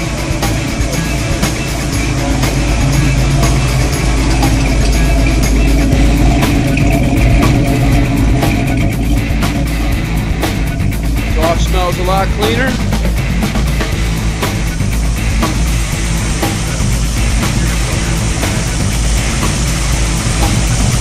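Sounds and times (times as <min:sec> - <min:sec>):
car engine running on dyno: 0:00.0 - 0:21.0
rock music with drum beat: 0:00.0 - 0:21.0.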